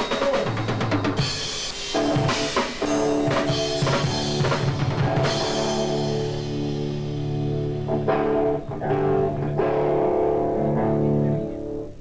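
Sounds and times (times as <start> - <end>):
bass guitar: 0.0 - 12.0
electric guitar chords: 0.0 - 12.0.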